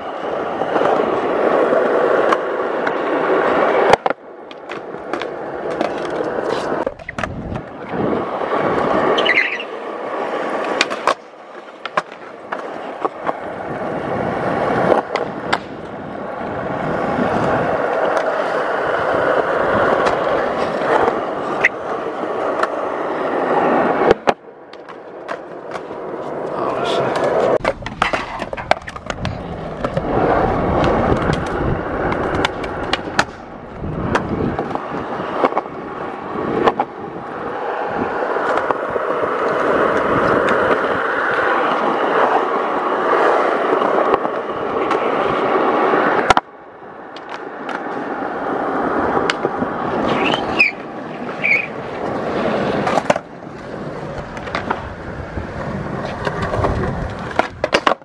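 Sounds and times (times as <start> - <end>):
skateboard clacking on ground: 0.0 - 58.0
skateboard wheels rolling on concrete: 0.0 - 58.0.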